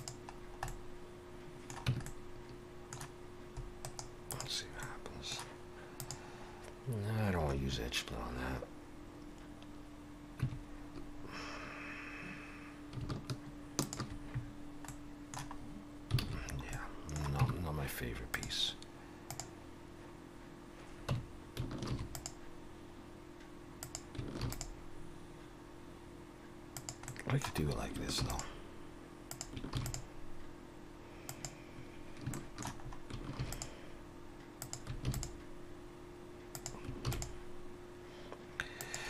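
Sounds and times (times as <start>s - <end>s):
keyboard and mouse clicking: 0.0s - 0.8s, 1.6s - 2.2s, 2.9s - 4.5s, 5.4s - 6.2s, 12.9s - 14.2s, 14.8s - 17.6s, 19.3s - 19.5s, 21.1s - 22.4s, 23.8s - 24.8s, 26.8s - 27.6s, 29.3s - 30.0s, 31.3s - 31.6s, 32.2s - 33.7s, 34.6s - 35.4s, 36.5s - 37.4s
steady hum: 0.0s - 39.0s.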